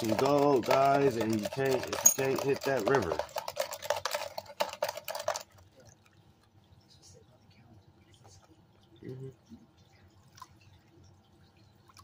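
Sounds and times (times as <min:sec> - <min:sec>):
gravel rattling in a plastic pan: 0:00.0 - 0:05.9
water sloshing: 0:00.0 - 0:12.0
water dripping: 0:04.8 - 0:12.0.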